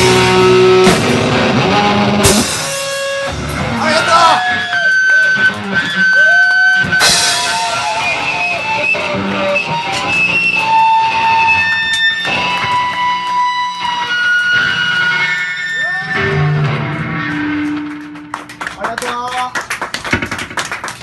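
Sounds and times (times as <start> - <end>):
electric guitars ringing: 0.0 - 18.8.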